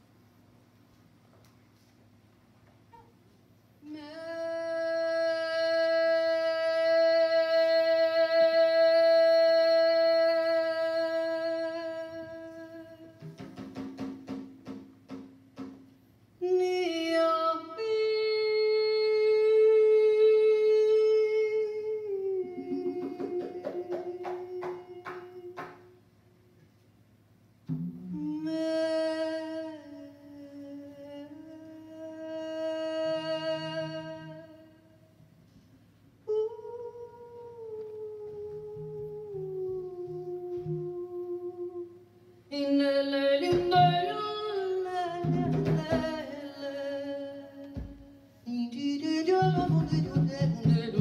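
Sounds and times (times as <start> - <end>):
person humming a long note: 3.8 - 13.4, 16.4 - 26.0, 27.9 - 35.0, 36.2 - 48.0.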